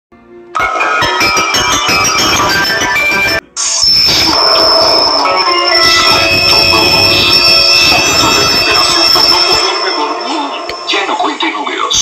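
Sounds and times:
commercial music: 0.2s - 12.0s
high-pitched whine: 1.8s - 12.0s.

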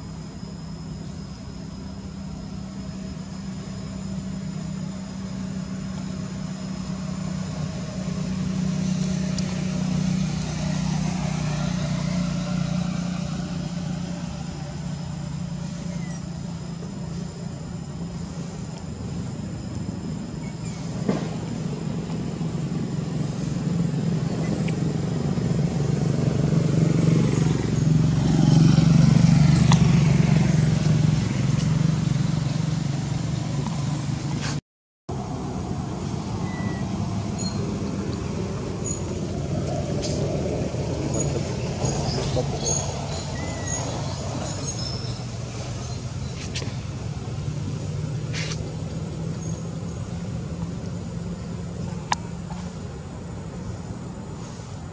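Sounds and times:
vehicle engines humming: 0.0s - 54.9s.

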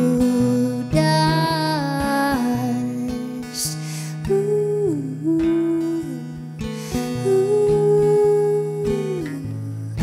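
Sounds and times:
plucked classical guitar: 0.0s - 10.0s.

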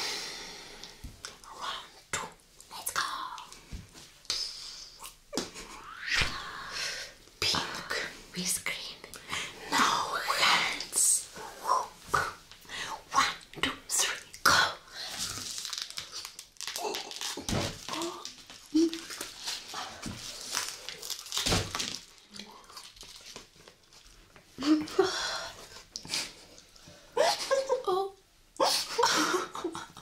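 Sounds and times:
breathing: 0.0s - 1.1s, 9.2s - 9.6s, 12.6s - 13.0s, 25.0s - 25.8s
crunching and chewing broccoli: 15.3s - 24.2s.

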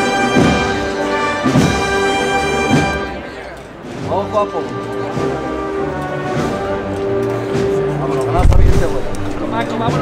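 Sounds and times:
brass band playing: 0.0s - 10.0s.

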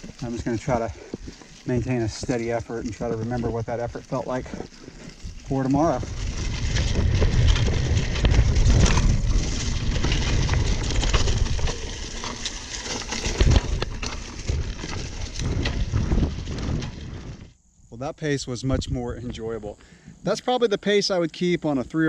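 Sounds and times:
tyres crackling through dry leaves: 0.0s - 17.5s
bike rattling over ground: 0.0s - 17.6s
wind rumbling on microphone: 0.0s - 17.6s, 18.3s - 19.8s.

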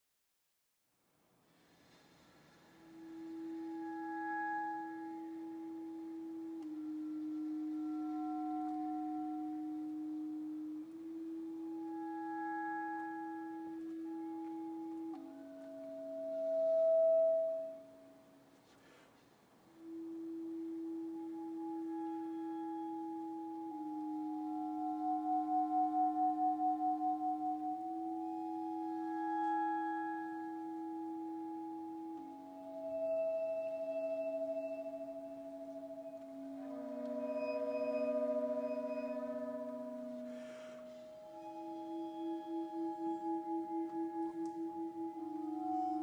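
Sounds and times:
clarinet multiphonic tones: 2.7s - 46.0s
bowed vibraphone notes: 20.7s - 46.0s.

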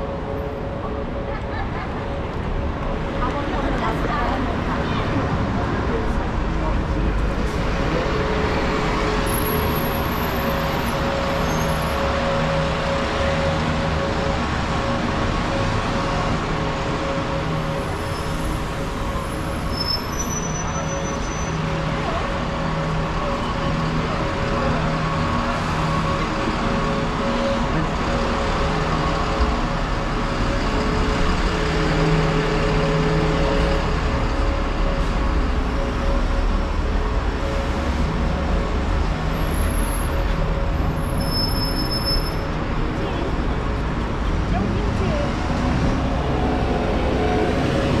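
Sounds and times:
bus engine humming: 0.0s - 48.0s
passing cars: 0.0s - 48.0s.

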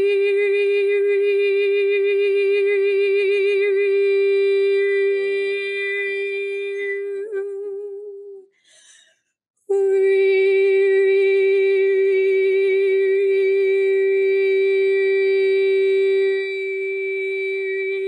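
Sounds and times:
woman singing long steady note: 0.0s - 8.4s, 9.7s - 18.0s.

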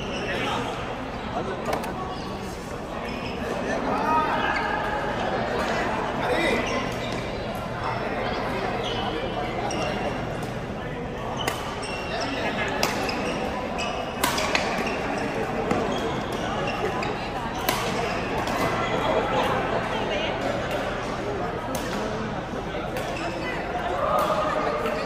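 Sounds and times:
players' voices: 0.0s - 25.0s.

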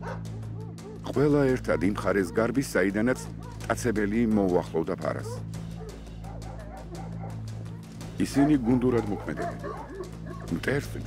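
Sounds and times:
dogs barking: 0.0s - 11.0s
low musical drone: 0.0s - 11.0s.

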